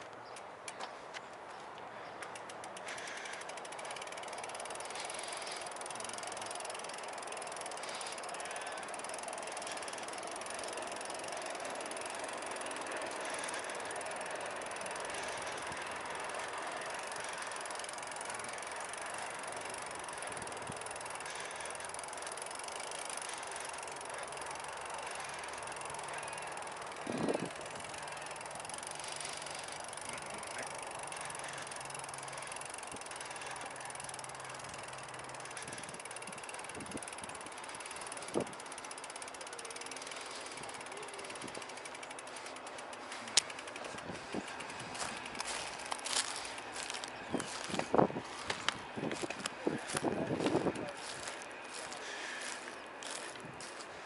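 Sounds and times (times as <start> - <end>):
bicycle knocking over bumps: 2.2 - 53.8
bicycle freewheel ticking: 2.2 - 54.0.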